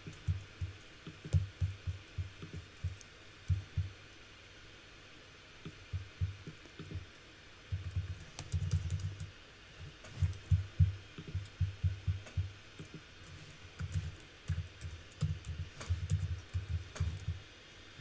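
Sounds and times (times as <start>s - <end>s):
typing on computer keyboard: 7.7s - 9.3s, 10.2s - 17.4s.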